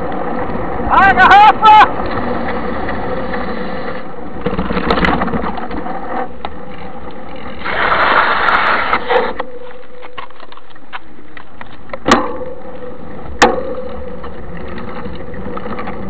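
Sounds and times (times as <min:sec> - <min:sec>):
bike tyres rolling: 0:00.0 - 0:16.0
bike rattling clicks: 0:09.6 - 0:16.0.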